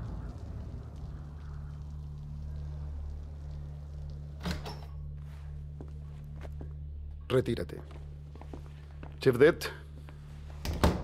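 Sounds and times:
low steady hum: 0.0 - 11.0
footsteps on wooden floor: 7.8 - 9.2.

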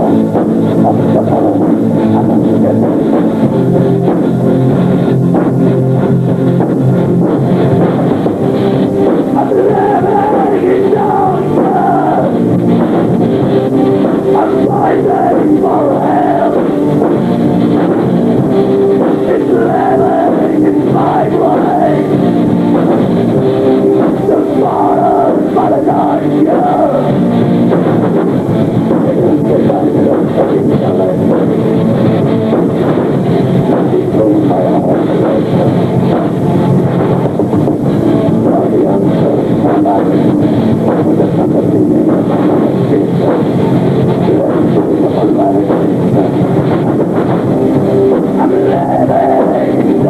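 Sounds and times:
heavy metal band playing: 0.0 - 50.0.

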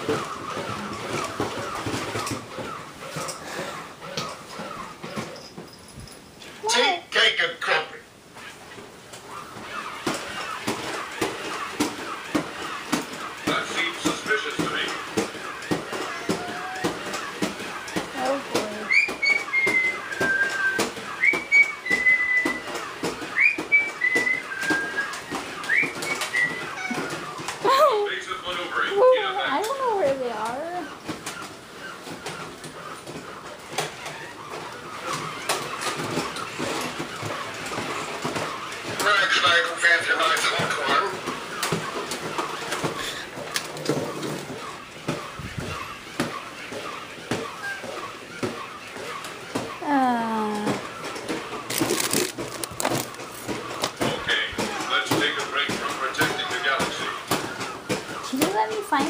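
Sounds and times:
whistle-like chirps: 18.9 - 27.2
toy robot clicking on floor: 50.4 - 54.0.

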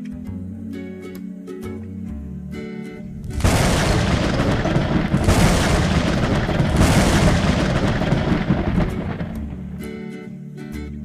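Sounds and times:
thunder rumbling: 3.1 - 10.0
heavy rain: 3.2 - 9.9.

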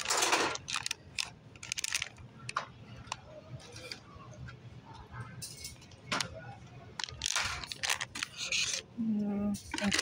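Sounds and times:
foil package crinkling: 0.0 - 2.2, 7.0 - 8.8, 9.7 - 10.0.

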